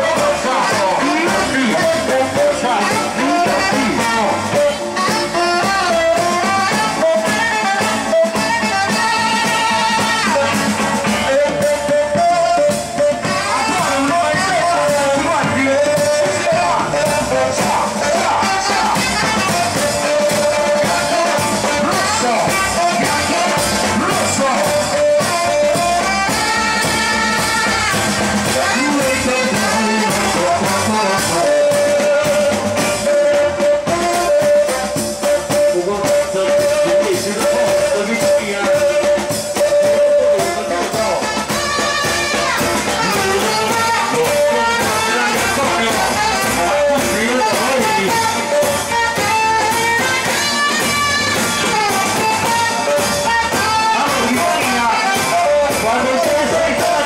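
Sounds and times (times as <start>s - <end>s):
live band with saxophones and drums: 0.0s - 57.0s
person singing: 0.0s - 57.0s.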